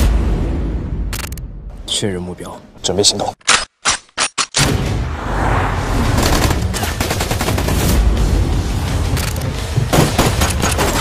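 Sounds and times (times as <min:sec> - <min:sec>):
rapid automatic gunfire: 0:06.2 - 0:07.8.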